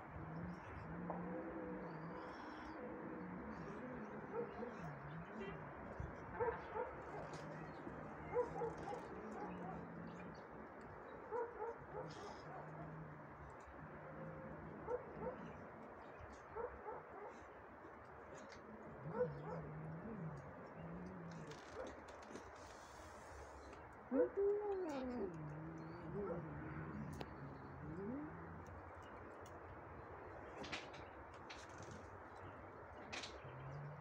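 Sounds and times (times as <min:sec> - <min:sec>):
cat growling low: 0:00.0 - 0:10.8, 0:11.8 - 0:15.8, 0:18.5 - 0:23.5, 0:24.1 - 0:28.8.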